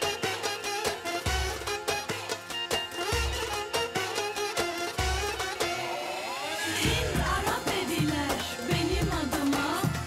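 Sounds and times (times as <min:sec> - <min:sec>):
drum beat: 0:06.8 - 0:10.0.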